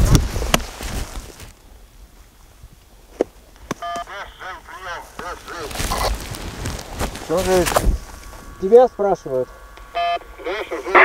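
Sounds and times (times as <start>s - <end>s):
wind on microphone: 0.0s - 1.5s, 5.7s - 8.6s
radio electronic beep: 3.8s - 6.2s, 7.3s - 11.0s
warbling radio call signal: 3.8s - 11.0s
microphone handling clicks: 5.2s - 8.4s.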